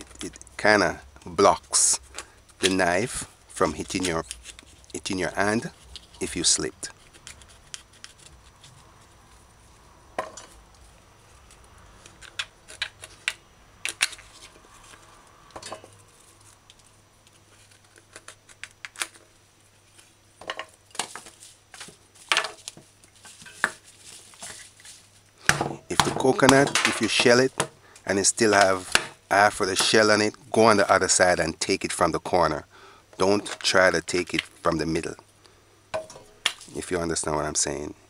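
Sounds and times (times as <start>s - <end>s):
knife scraping coconut shell: 6.9s - 9.0s.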